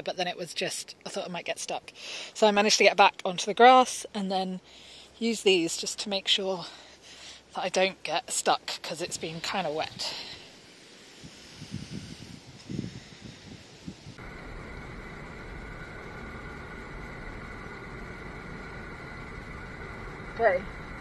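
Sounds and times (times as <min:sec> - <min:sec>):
van engine idling: 0:14.2 - 0:21.0.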